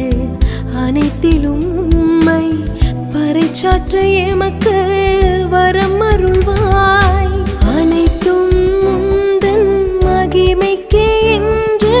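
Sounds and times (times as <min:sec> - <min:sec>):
steady thumping beat: 0:06.1 - 0:08.8.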